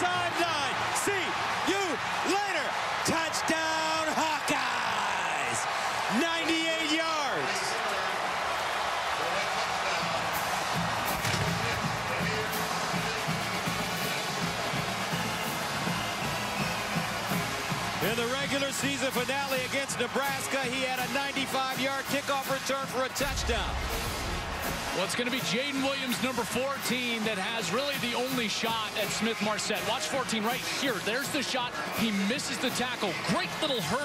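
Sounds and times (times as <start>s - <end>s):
excited shouting: 0.0s - 14.0s
stadium crowd cheering: 0.0s - 34.0s
marching band brass and drums: 8.4s - 34.0s.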